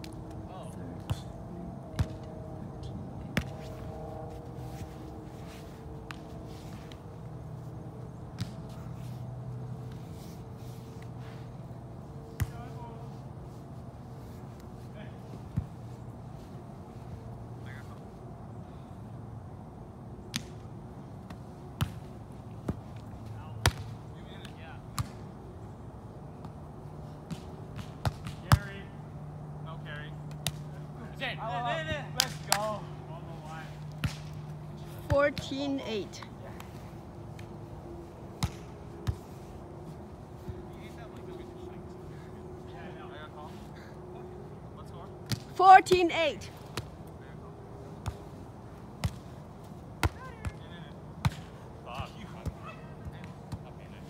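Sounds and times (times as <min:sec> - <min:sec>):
steady low hum: 0:00.0 - 0:45.6
volleyball being struck by hands: 0:33.9 - 0:35.5, 0:38.4 - 0:39.2, 0:49.0 - 0:49.2, 0:50.0 - 0:50.6, 0:51.2 - 0:51.6
players shouting: 0:45.5 - 0:46.6.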